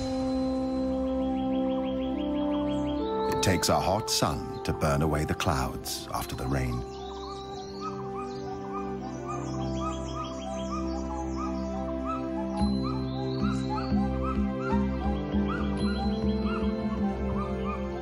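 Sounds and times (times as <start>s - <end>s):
background music with low notes: 0.0s - 18.0s.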